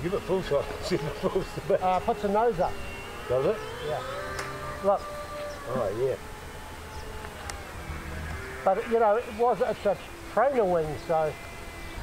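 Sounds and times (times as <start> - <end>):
model plane motors whining: 0.0 - 12.0.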